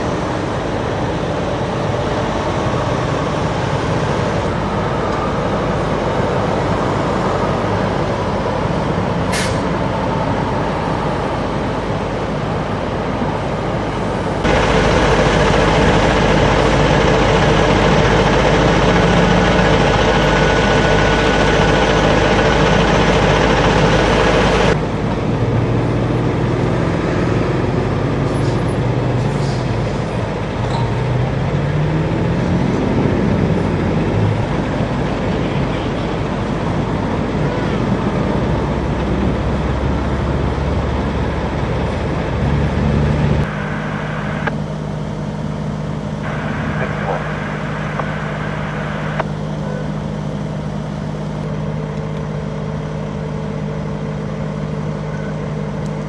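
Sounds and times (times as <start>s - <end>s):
freeway traffic noise: 0.0s - 56.0s.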